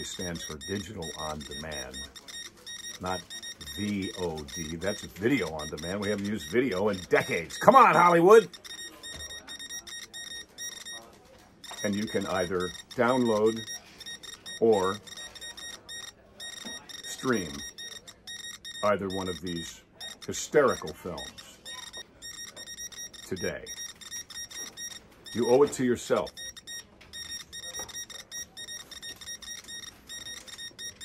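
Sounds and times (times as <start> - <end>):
fast electronic beeping music: 0.0 - 11.0, 11.6 - 31.0.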